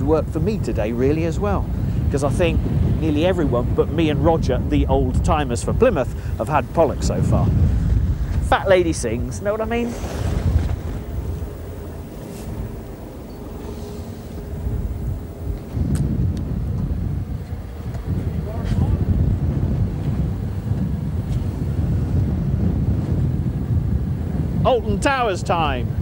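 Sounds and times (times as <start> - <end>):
faint steady hum: 0.0 - 26.0
wind buffeting microphone: 0.0 - 26.0.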